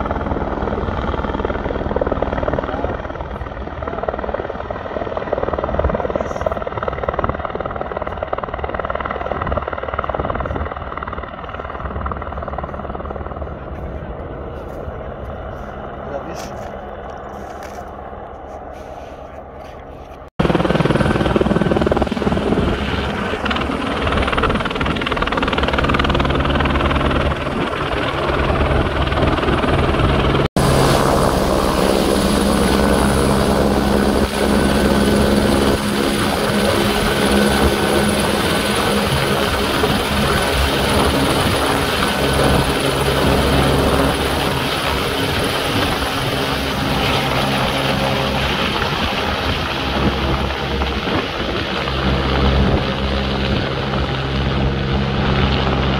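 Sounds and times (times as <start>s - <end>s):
helicopter rotor beating: 0.0s - 17.3s, 20.2s - 55.9s
helicopter turbine whine: 0.0s - 55.9s.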